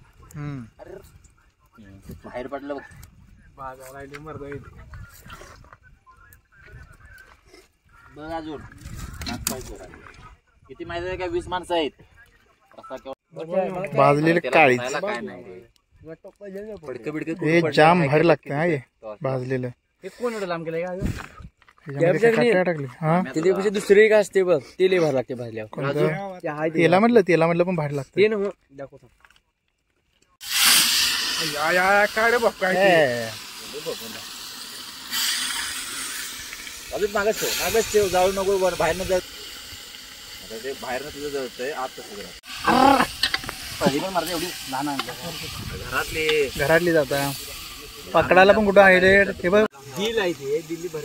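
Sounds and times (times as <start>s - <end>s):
hot oil hissing and sizzling: 30.4s - 51.0s.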